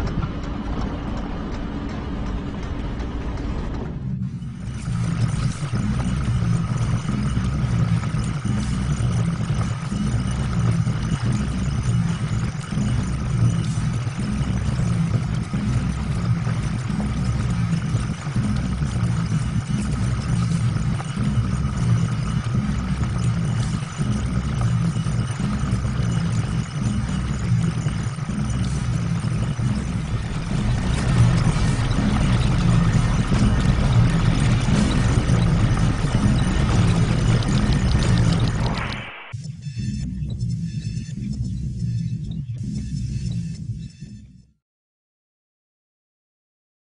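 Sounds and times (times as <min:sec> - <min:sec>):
background music: 0:00.0 - 0:43.9
low machine rumble and hum: 0:00.0 - 0:44.4.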